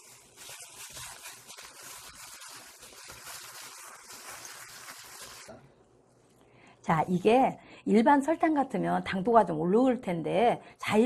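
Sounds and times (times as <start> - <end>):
wet squishing of tossed cucumber: 0.0 - 5.6.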